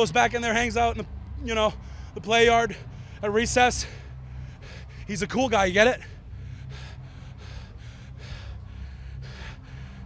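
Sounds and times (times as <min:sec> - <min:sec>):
steady low hum: 0:00.0 - 0:10.0
man breathing heavily: 0:01.1 - 0:10.0.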